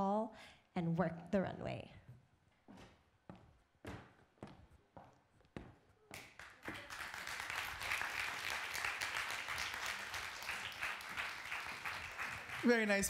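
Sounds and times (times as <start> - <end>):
audience applause: 6.2 - 13.0.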